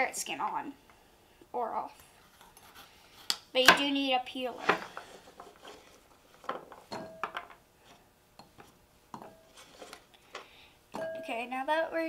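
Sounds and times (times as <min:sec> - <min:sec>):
clinks into glass bowl: 0:06.9 - 0:07.5, 0:10.9 - 0:11.3.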